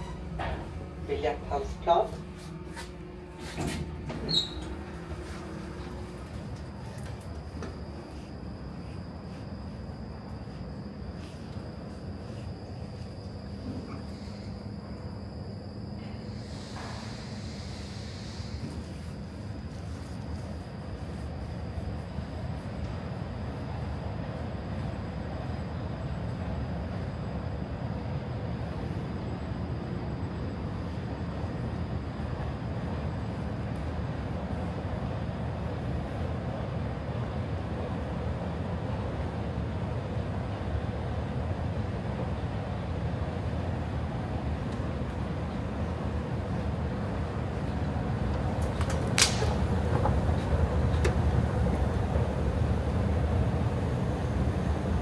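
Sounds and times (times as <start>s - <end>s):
escalators droning: 0.0s - 55.0s.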